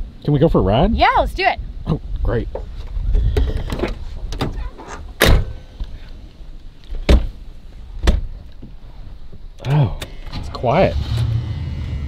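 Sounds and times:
rustling and movement: 2.4s - 11.2s
car doors shutting: 3.2s - 5.9s, 8.0s - 8.5s, 9.6s - 12.0s.

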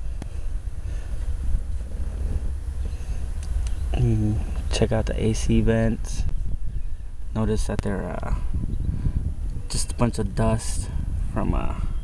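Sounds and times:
wind buffeting microphone: 0.0s - 12.0s
faint clicks: 3.4s - 3.8s.

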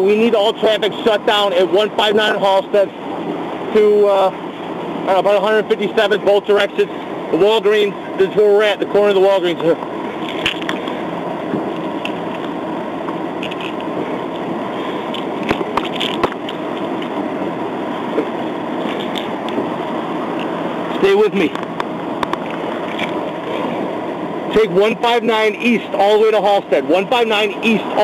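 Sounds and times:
steady microphone noise: 0.0s - 28.0s.

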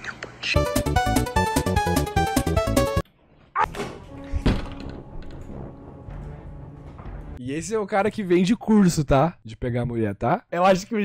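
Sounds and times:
background music: 0.6s - 3.0s, 3.6s - 8.3s.

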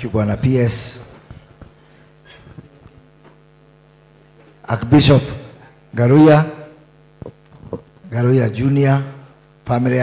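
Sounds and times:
man speaking over microphone: 0.0s - 1.3s, 4.6s - 6.8s, 8.0s - 10.0s
low electrical mains hum: 0.0s - 10.0s.

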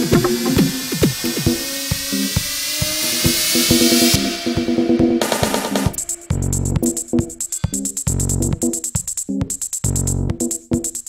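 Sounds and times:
hissing noise sweep: 0.0s - 7.7s
electronic dance music: 0.0s - 11.0s
steady kick drum: 0.0s - 11.0s.

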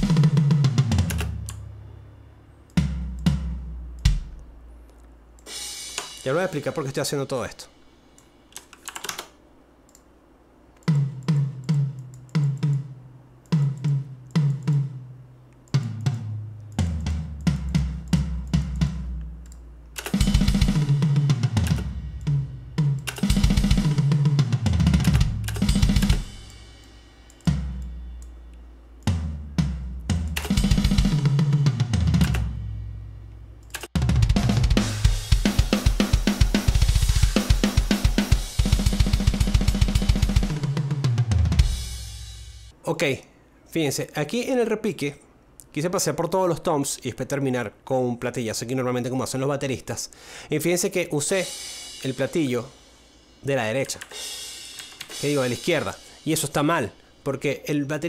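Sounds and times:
programmed rock drum kit: 0.0s - 2.1s, 2.7s - 4.7s, 5.4s - 8.5s, 10.8s - 42.8s, 51.1s - 58.0s
cymbal wash: 25.6s - 28.5s, 51.4s - 53.5s, 54.1s - 57.4s.

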